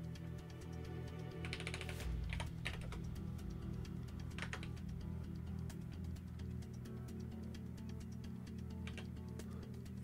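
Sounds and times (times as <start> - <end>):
background music with low bass: 0.0 - 10.0
computer keyboard typing: 1.1 - 5.0, 8.7 - 9.2.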